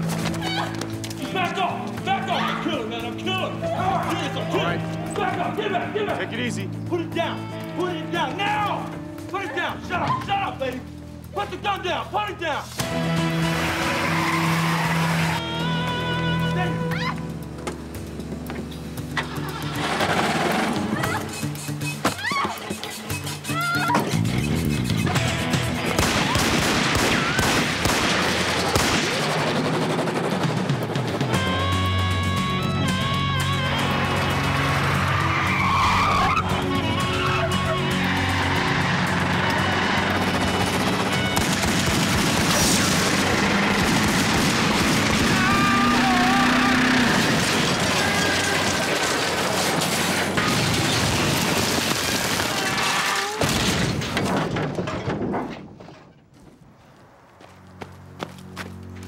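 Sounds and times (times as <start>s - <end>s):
dramatic music score: 0.0s - 51.2s
car engines: 33.1s - 52.4s.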